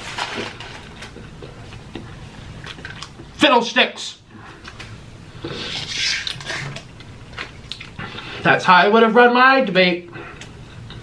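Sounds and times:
packet crinkling and rustling: 0.0s - 1.3s.

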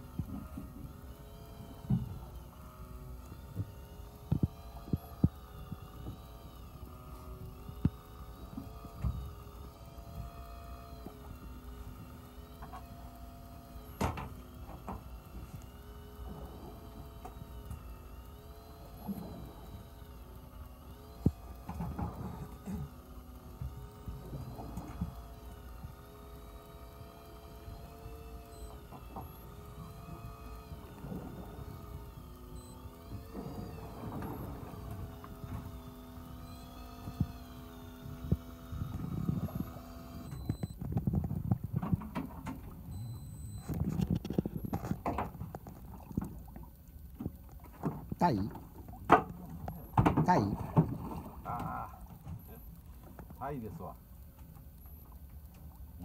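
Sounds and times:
electric fishing reel whining: 0.0s - 56.0s.

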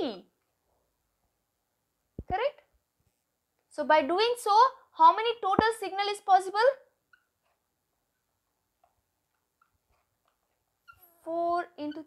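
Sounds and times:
marker squeaking on paper: 7.1s - 7.6s, 9.6s - 12.0s.

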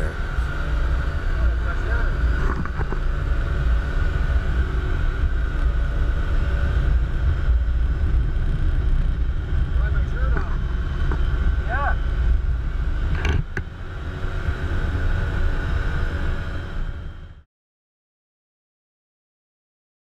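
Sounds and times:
engine low rumble: 0.0s - 17.4s
faint steady whine: 0.0s - 17.4s.

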